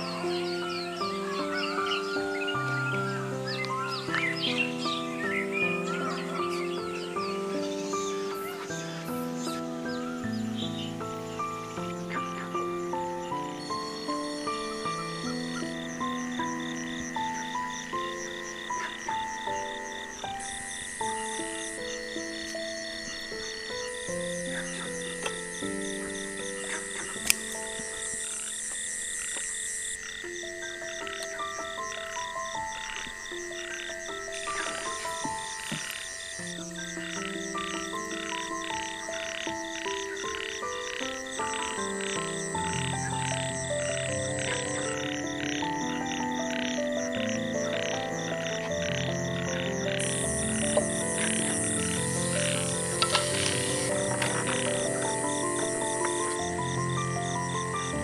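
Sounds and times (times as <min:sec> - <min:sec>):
frogs calling: 0:00.0 - 0:58.0
soft instrumental melody: 0:00.0 - 0:58.0.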